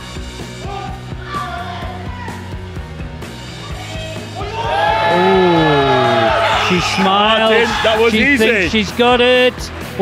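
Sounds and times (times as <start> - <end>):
loud yelling: 4.4 - 8.1.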